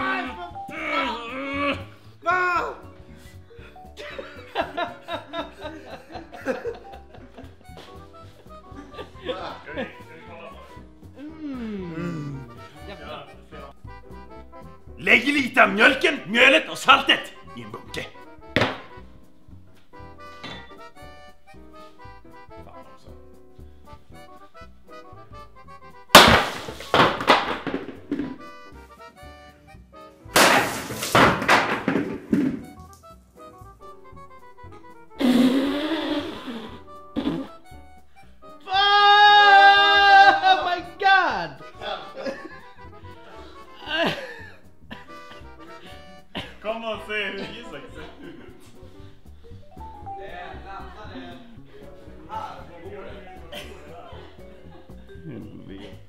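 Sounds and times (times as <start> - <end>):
man shouting: 0.0 - 2.9, 15.0 - 18.2, 38.6 - 42.0
quiet background music: 0.0 - 56.0
axe hitting wooden table: 18.6 - 18.9, 26.2 - 28.4, 30.4 - 32.7.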